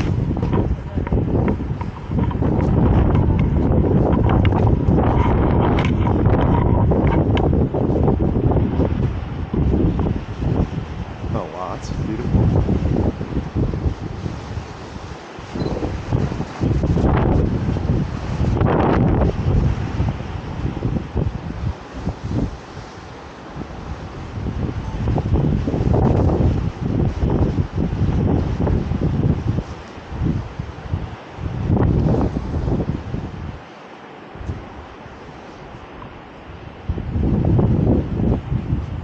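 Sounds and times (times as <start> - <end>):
wind buffeting a microphone: 0.0 - 39.0.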